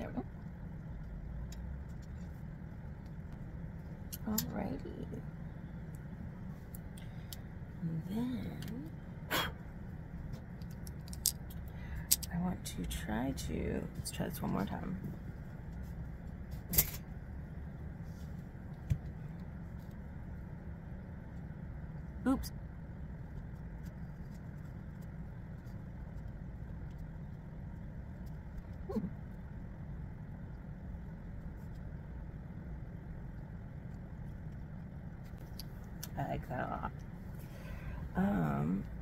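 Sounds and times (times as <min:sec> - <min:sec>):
low background rumble: 0:00.0 - 0:39.0.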